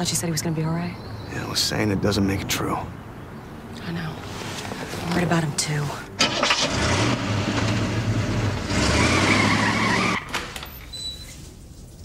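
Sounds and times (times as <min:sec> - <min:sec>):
tyre squeal: 0:08.8 - 0:11.5.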